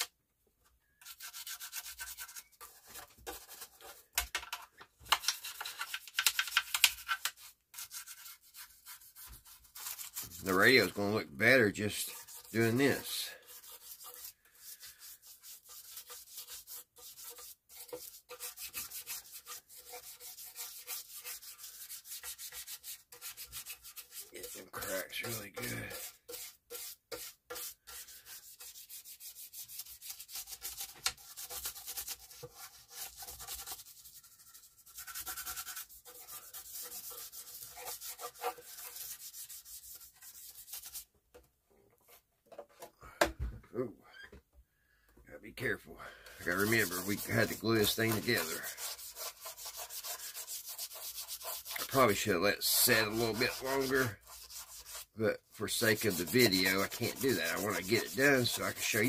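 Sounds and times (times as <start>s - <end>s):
scrubbing strokes on radio cabinet: 1.0s - 41.1s, 45.6s - 59.0s.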